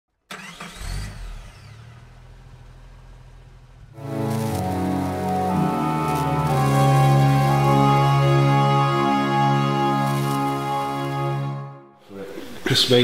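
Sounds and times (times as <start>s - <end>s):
intro music with sustained notes: 3.9s - 13.0s.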